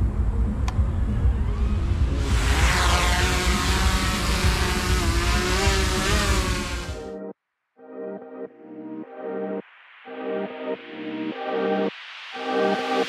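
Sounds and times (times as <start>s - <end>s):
low rumble: 0.0s - 7.0s
drone propellers whirring: 0.0s - 7.2s.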